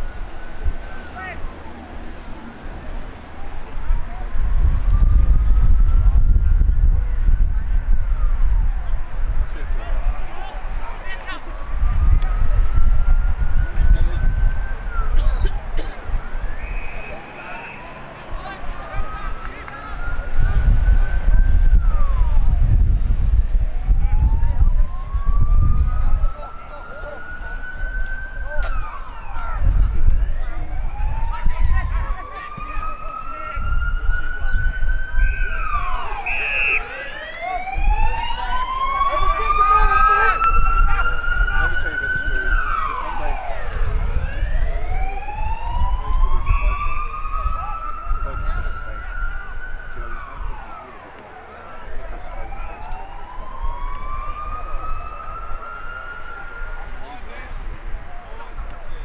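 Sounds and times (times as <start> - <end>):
distant emergency vehicle siren wailing: 0.0 - 59.0.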